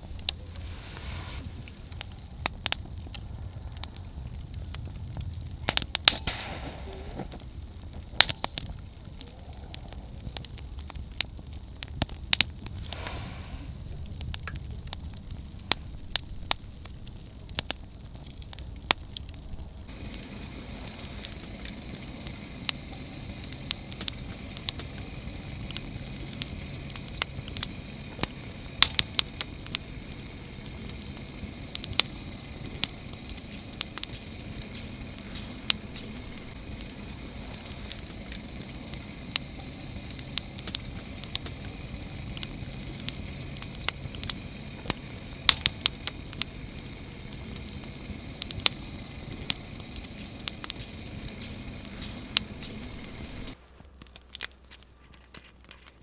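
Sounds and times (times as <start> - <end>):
steady hiss: 0.0 - 54.2
low rumble of flames: 0.0 - 56.0
wood fire crackling and popping: 0.0 - 56.0.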